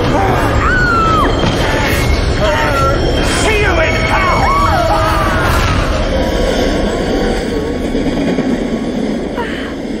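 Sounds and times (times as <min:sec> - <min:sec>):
subway train rushing past: 0:00.0 - 0:10.0.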